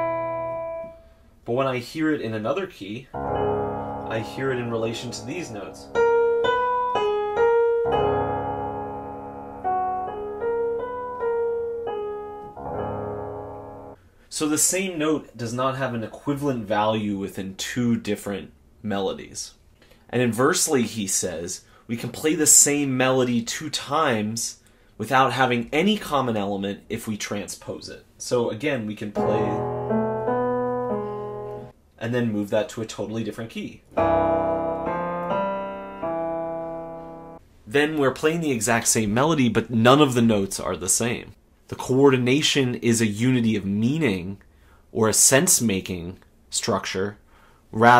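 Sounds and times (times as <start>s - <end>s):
piano notes and chord: 0.0s - 1.1s, 3.1s - 14.0s, 29.2s - 31.7s, 33.9s - 37.4s.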